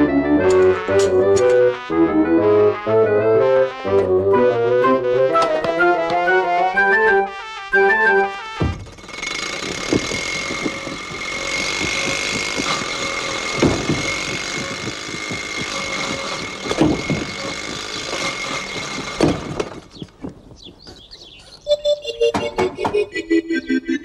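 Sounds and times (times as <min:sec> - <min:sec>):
thumps: 0:08.6 - 0:20.4.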